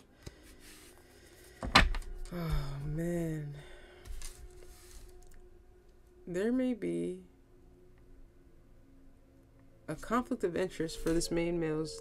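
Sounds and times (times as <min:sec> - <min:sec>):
cards sliding on table: 0:04.1 - 0:05.1.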